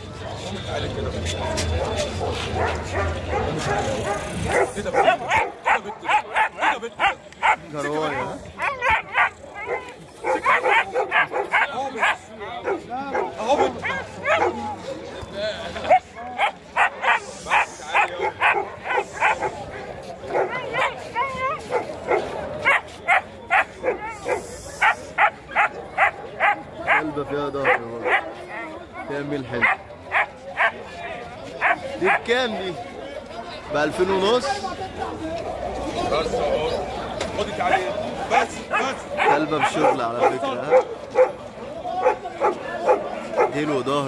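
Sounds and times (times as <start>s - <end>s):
puppy barking: 1.8s - 14.6s, 15.9s - 19.6s, 20.3s - 27.0s, 27.6s - 28.3s, 29.6s - 30.8s, 37.7s - 41.4s, 42.0s - 43.7s.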